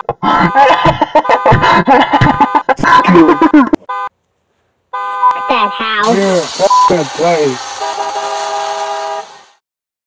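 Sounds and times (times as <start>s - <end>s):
car horn blast: 1.2s - 4.1s, 4.9s - 9.6s.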